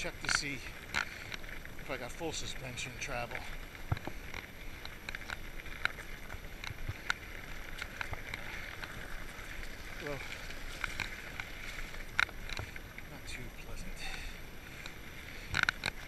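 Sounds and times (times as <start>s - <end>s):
bike tyres on dirt trail: 0.0s - 16.0s
bike clicks and knocks: 2.3s - 12.8s, 14.8s - 16.0s.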